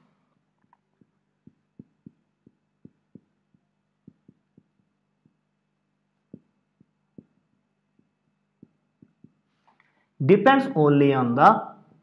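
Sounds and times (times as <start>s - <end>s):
faint low hum: 0.0s - 12.0s
marker knocking on whiteboard: 0.6s - 5.5s, 6.3s - 9.5s.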